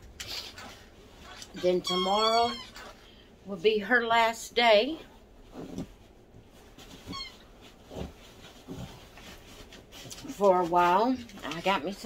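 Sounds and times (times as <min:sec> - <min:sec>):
squeaky toy squeak: 0:01.2 - 0:03.0, 0:07.1 - 0:07.4.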